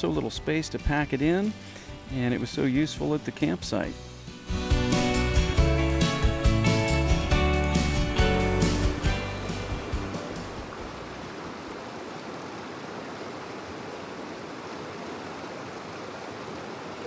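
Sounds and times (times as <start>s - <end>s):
guitar music: 0.0s - 10.7s
river water flowing over stones: 7.8s - 17.0s.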